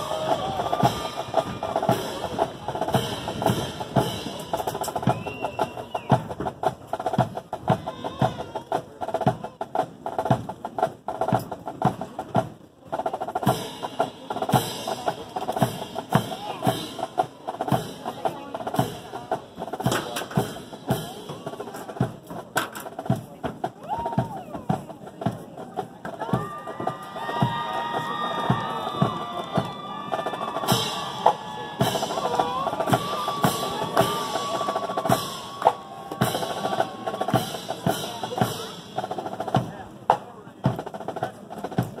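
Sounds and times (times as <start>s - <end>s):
marching band playing a march: 0.0s - 42.0s
snare and bass drums: 0.0s - 42.0s.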